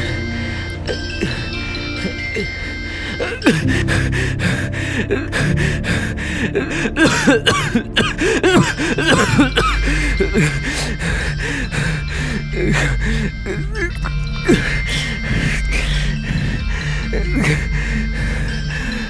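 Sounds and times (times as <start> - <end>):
background music: 0.0 - 19.0
man coughing and gasping: 6.5 - 11.1.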